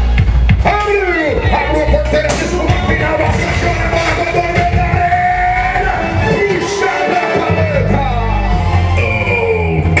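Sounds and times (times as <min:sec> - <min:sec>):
rock song with singing: 0:00.4 - 0:10.0.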